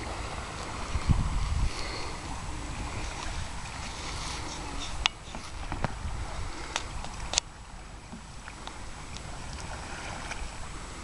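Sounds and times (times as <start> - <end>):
kayak paddles splashing: 0.0 - 11.0
steady outdoor hiss: 0.0 - 11.0
wind rumble on microphone: 0.0 - 11.0.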